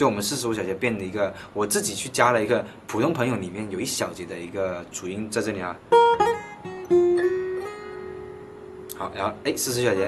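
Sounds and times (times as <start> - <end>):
acoustic guitar lead line: 5.4 - 10.0.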